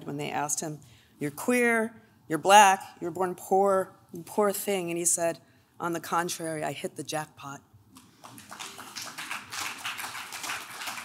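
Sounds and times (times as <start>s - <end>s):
audience applauding: 8.2s - 11.0s.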